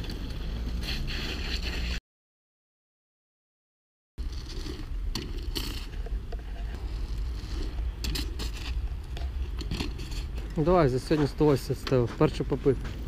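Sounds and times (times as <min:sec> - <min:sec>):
bike clicks and knocks: 0:04.4 - 0:06.9, 0:08.0 - 0:13.0.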